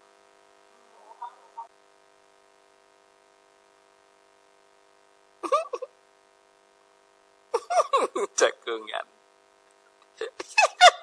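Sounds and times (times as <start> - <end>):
faint steady hum: 0.0 - 11.0
person exclaiming: 5.4 - 5.9, 7.6 - 8.6.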